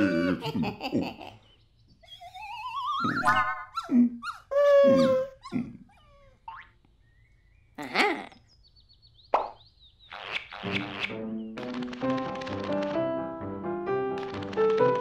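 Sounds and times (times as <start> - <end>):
character vocal noises: 7.8 - 8.4.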